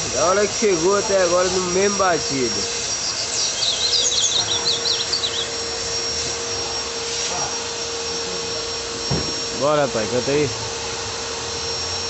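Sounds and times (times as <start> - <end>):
electric motor hum: 0.0 - 12.0
bird singing high notes: 1.8 - 6.2.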